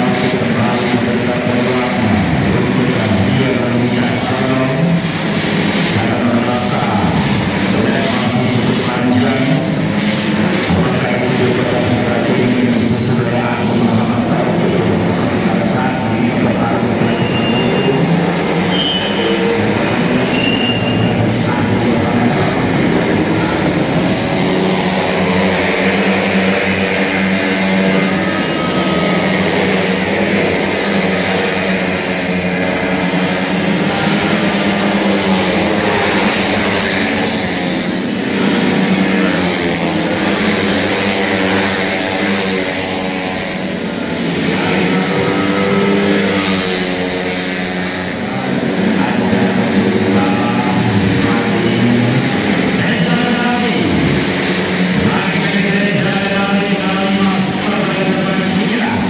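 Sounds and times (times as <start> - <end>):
scooter engines revving: 0.0 - 59.0.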